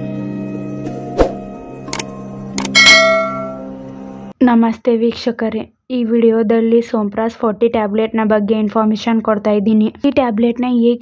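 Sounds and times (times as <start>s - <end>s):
soft background music: 0.0s - 4.4s
clicks: 1.9s - 2.8s
bell ding: 2.6s - 3.8s.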